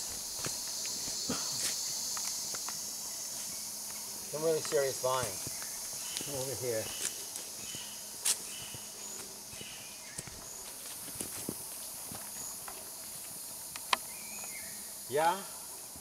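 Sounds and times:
footsteps on forest path: 0:00.0 - 0:14.8
insects buzzing: 0:00.0 - 0:16.0.

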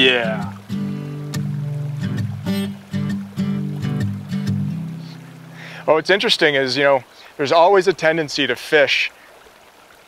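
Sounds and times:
background music with low notes: 0:00.0 - 0:05.8.

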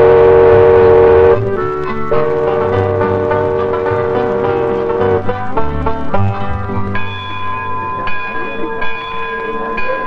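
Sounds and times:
ship's bell ringing: 0:00.0 - 0:10.0.

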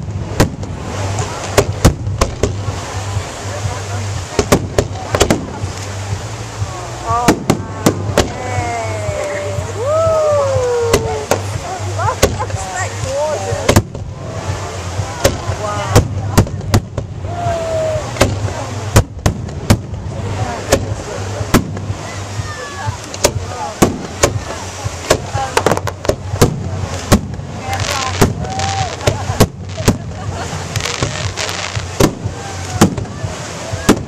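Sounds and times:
onlookers' voices: 0:00.0 - 0:34.0.

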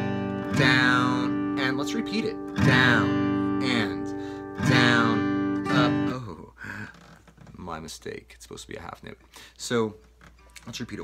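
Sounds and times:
acoustic guitar strummed: 0:00.0 - 0:06.4.

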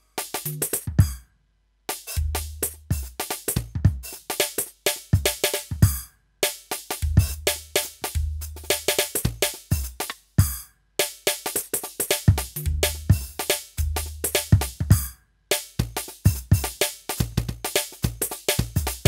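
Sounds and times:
electronic drum kit groove: 0:00.0 - 0:01.2, 0:01.9 - 0:19.0.

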